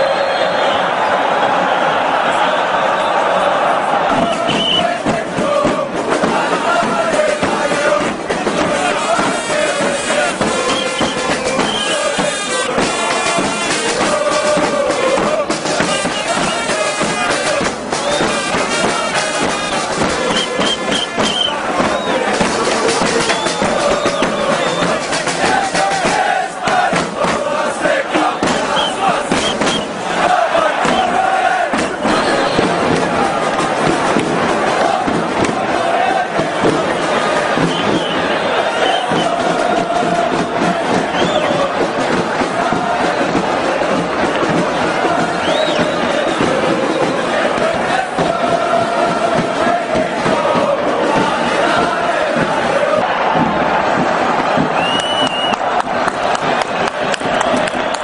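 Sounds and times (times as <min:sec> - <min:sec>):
crowd chanting and singing: 0:00.0 - 0:58.0.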